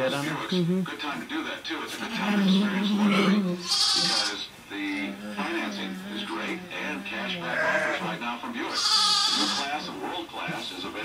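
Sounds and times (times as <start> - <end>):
talk radio in background: 0.0 - 11.0
sheep bleating: 2.5 - 4.5, 5.2 - 9.9.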